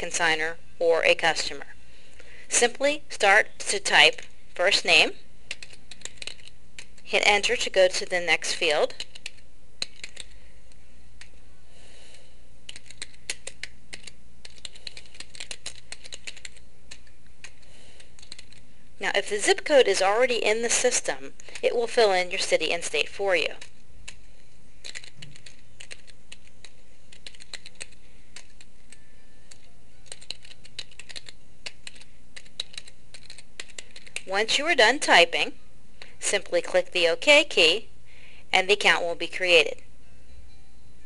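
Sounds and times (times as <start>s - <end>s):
typing on computer keyboard: 5.5s - 7.0s, 8.9s - 10.4s, 12.7s - 18.6s, 24.8s - 34.3s.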